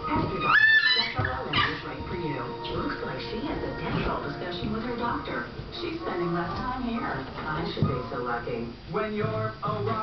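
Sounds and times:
television music: 0.0 - 10.0
voices from television: 0.0 - 10.0.

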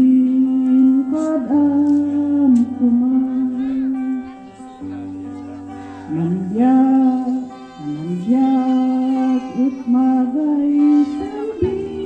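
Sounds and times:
person singing through loudspeaker: 0.0 - 12.0.

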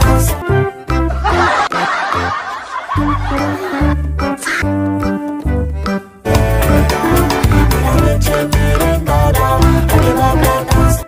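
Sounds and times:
upbeat children's song: 0.0 - 5.7, 6.3 - 11.0
snickering laugh: 1.1 - 4.0.

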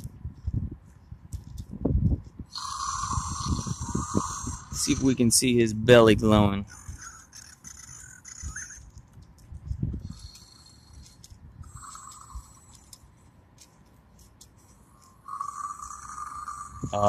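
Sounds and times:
toy electronic creature sounds: 2.5 - 5.2, 6.6 - 8.8, 15.2 - 17.0.

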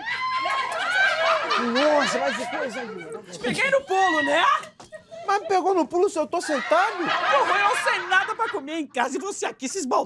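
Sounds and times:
man laughing: 1.3 - 4.1, 5.1 - 9.1.

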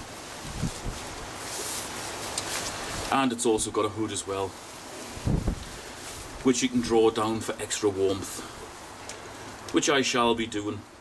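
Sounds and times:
jacket rustling: 0.0 - 3.2, 4.2 - 9.3
steady background hiss: 0.0 - 11.0.

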